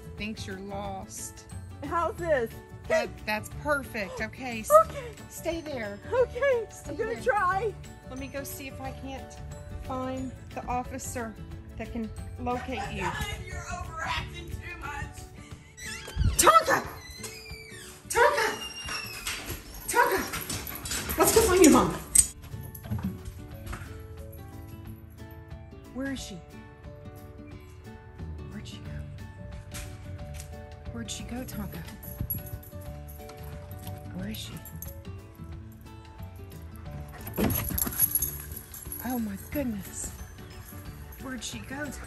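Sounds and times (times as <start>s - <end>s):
soft background music: 0.0s - 42.0s
dog collar tags jingling: 18.7s - 25.4s, 31.4s - 42.0s.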